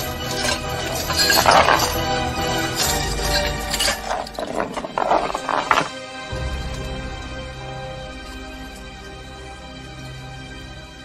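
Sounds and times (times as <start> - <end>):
coin rattling on wooden floor: 0.0 - 5.9.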